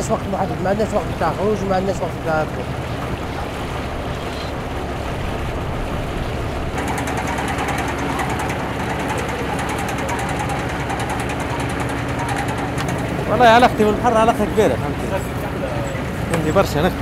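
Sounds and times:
boat engine humming: 0:00.0 - 0:17.0
fast mechanical rattle: 0:02.7 - 0:14.6.

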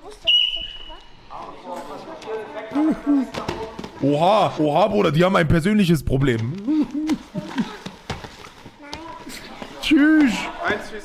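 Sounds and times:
voices in sports hall: 0:00.0 - 0:11.0
whistle blast: 0:00.2 - 0:01.1.

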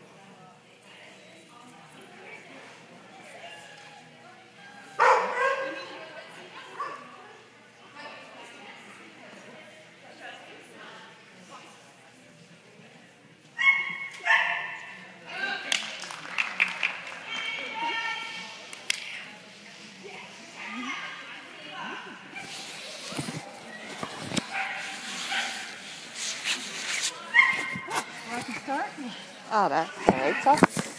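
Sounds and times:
dog barking: 0:05.0 - 0:05.8, 0:13.6 - 0:14.8.

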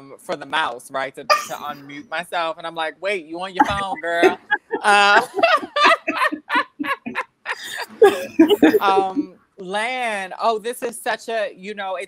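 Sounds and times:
woman laughing: 0:03.6 - 0:09.3.

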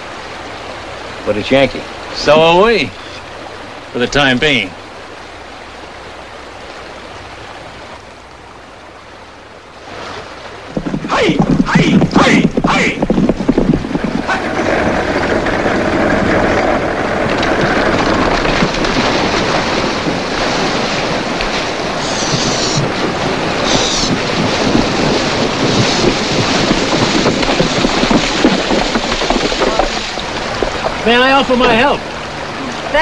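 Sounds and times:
water splashing: 0:00.0 - 0:33.0
horse galloping through water: 0:09.8 - 0:33.0
horse hooves on stony ground: 0:10.6 - 0:32.0.

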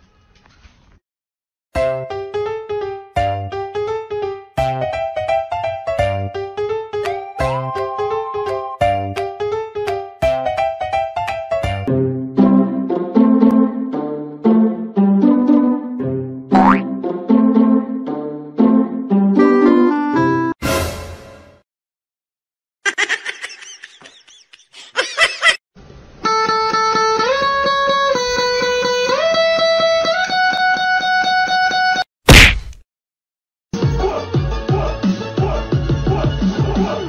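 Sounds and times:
bouncy plucked-note music: 0:15.0 - 0:17.8
rising pitch sound effect: 0:16.5 - 0:16.8
plucked guitar music: 0:26.3 - 0:32.0
loud whack: 0:32.3 - 0:32.8.

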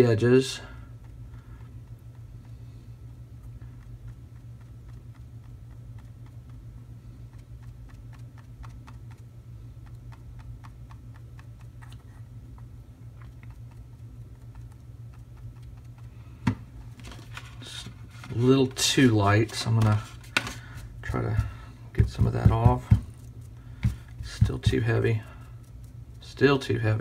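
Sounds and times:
steady low hum: 0:00.0 - 0:27.0
sponge dabbing ticks and taps: 0:03.4 - 0:16.6, 0:21.0 - 0:26.9.

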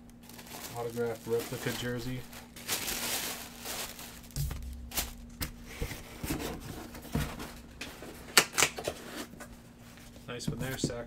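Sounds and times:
tissue paper rustling: 0:00.2 - 0:07.6.

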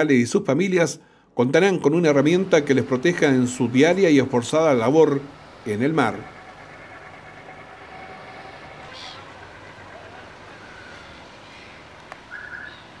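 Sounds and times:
low mechanical hum of boats: 0:00.0 - 0:13.0.

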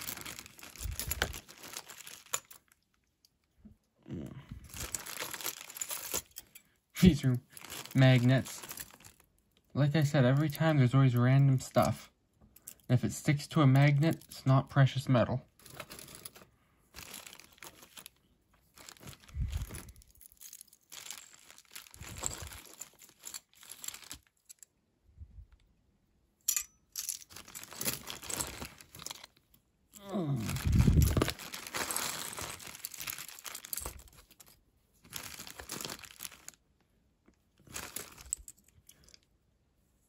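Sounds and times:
rustling jewelry and plastic bags: 0:00.0 - 0:03.7, 0:04.5 - 0:24.8, 0:26.5 - 0:39.4.

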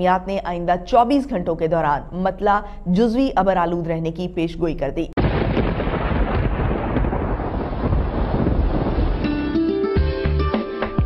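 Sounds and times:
deep rumble: 0:05.2 - 0:09.3
rain and wind: 0:05.2 - 0:09.8
guitar background music: 0:09.2 - 0:11.0.

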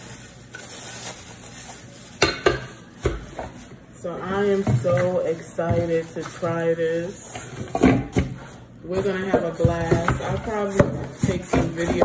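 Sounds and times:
plastic bag crinkling: 0:00.0 - 0:04.6, 0:05.5 - 0:07.5.

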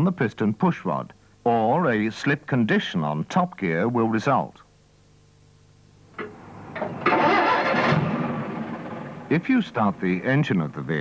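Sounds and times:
vehicle engine starting and running: 0:06.2 - 0:10.0.

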